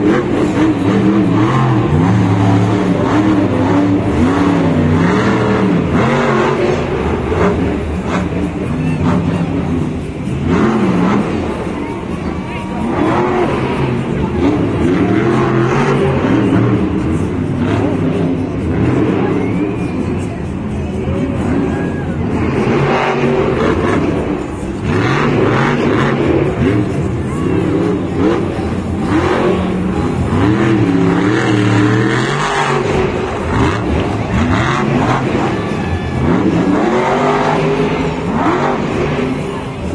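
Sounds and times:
monster truck engine revving: 0:00.0 - 0:39.9.

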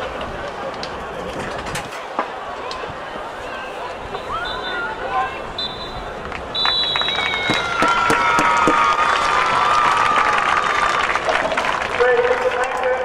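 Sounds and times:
spectators cheering: 0:02.0 - 0:13.0
whistle blast: 0:04.1 - 0:07.8
people clapping: 0:06.2 - 0:13.0.

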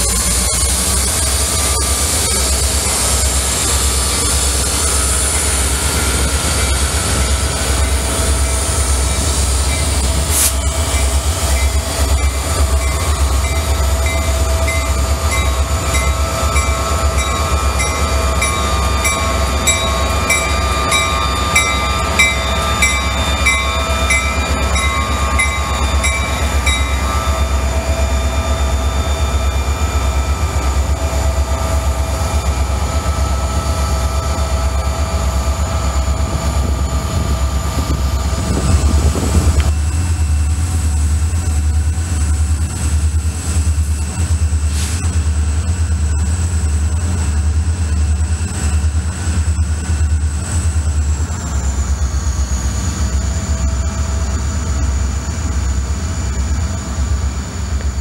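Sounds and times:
diesel locomotives rumbling: 0:00.0 - 0:58.0
thin steady ringing tones: 0:10.8 - 0:31.0.

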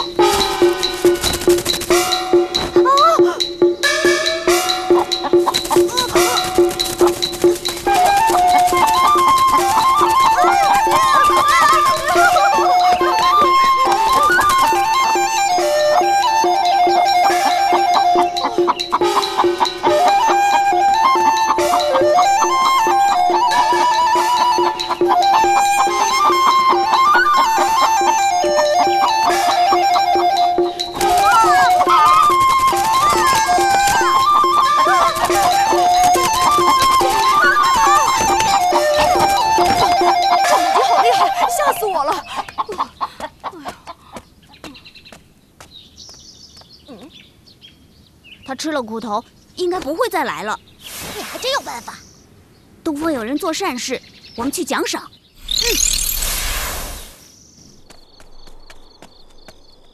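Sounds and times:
background music: 0:00.0 - 0:42.5
chicken clucking: 0:00.0 - 0:44.7
faint high chirps: 0:55.4 - 0:59.9.

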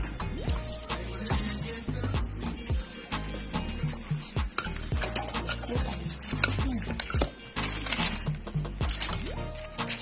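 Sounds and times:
background music with beat: 0:00.0 - 0:10.0
metal spoon stirring dough in bowl: 0:00.0 - 0:10.0.

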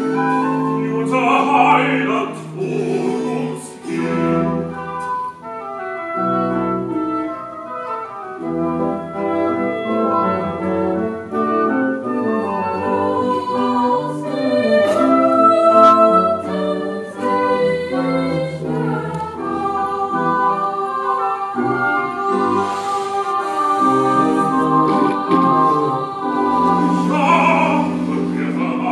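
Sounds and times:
choir singing: 0:00.0 - 0:05.5, 0:06.2 - 0:28.9
baroque orchestra: 0:00.0 - 0:28.9.

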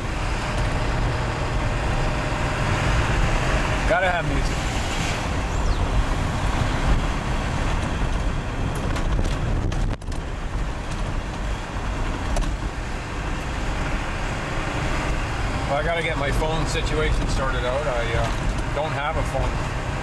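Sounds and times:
truck engine and road rumble: 0:00.0 - 0:20.0.

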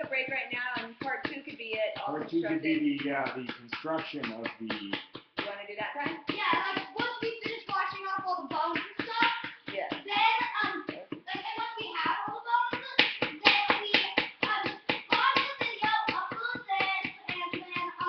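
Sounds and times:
small hammer tapping plaster: 0:00.0 - 0:18.0.

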